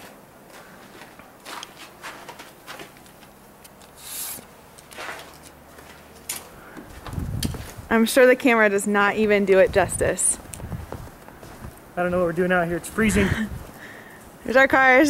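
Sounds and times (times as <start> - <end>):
footsteps crunching in snow: 0.0 - 3.3, 4.0 - 8.0, 9.7 - 14.4
wind buffeting microphone: 6.8 - 8.2, 9.0 - 14.7.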